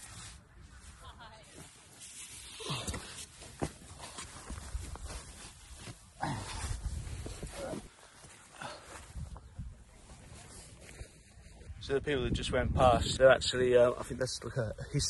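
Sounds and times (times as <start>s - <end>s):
clothing and tent fabric rustling: 0.0s - 11.8s.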